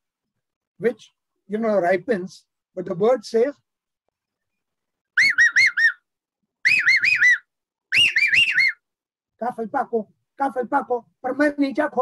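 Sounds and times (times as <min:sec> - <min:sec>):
man whistling with fingers: 0:05.2 - 0:06.0, 0:06.6 - 0:08.8.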